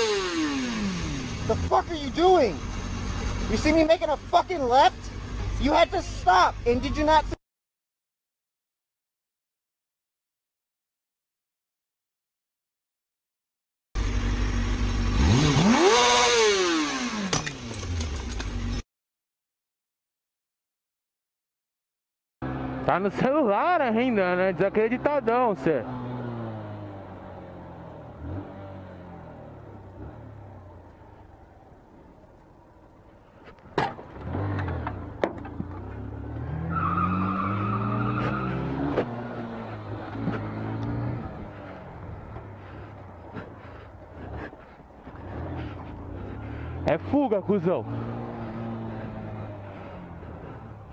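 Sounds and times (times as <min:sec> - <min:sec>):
motorcycle engine revving: 0:00.0 - 0:05.6, 0:14.0 - 0:18.8, 0:24.6 - 0:31.2, 0:34.1 - 0:50.9.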